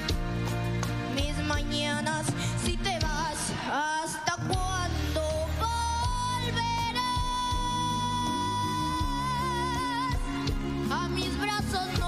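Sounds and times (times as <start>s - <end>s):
band accompaniment: 0.0s - 12.0s.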